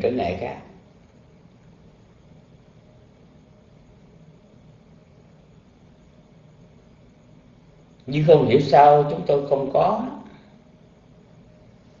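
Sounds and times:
steady background hiss: 0:00.0 - 0:12.0
man's voice: 0:08.1 - 0:10.3.

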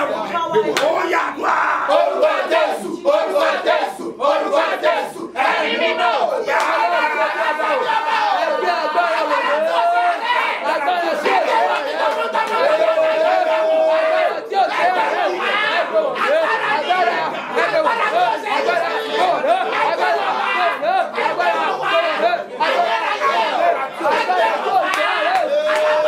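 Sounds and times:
overlapping voices praying: 0:00.0 - 0:26.0
long held cry: 0:00.8 - 0:26.0.

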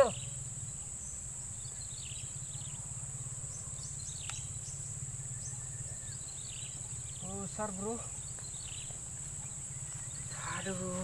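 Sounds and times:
bird chirps: 0:00.0 - 0:11.0
high-pitched insect drone: 0:00.0 - 0:11.0.

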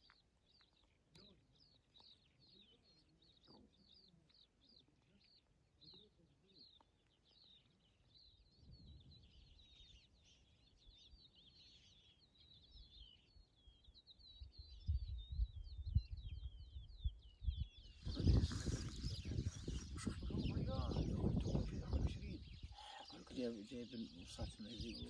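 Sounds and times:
small birds chirping: 0:00.0 - 0:25.0
wind buffeting microphone: 0:14.5 - 0:25.0.

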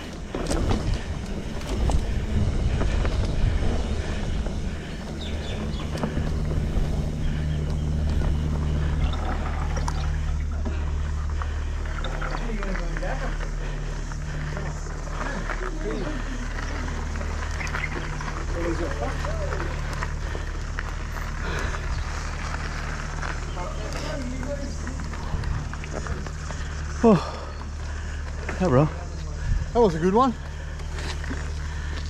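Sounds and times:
wind rumble on camera: 0:00.0 - 0:09.6
knocks and rattles over bumps: 0:00.0 - 0:29.6
bike tyres on dirt and gravel: 0:00.0 - 0:32.0
faint voices: 0:00.0 - 0:32.0.

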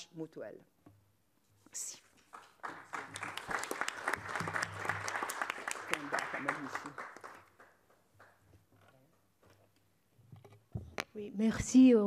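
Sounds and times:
audience applauding: 0:02.3 - 0:08.4.

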